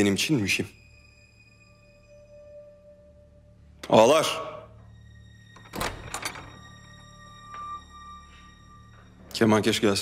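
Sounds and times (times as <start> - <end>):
quiet background music: 0.0 - 10.0
door thudding open: 5.6 - 6.7.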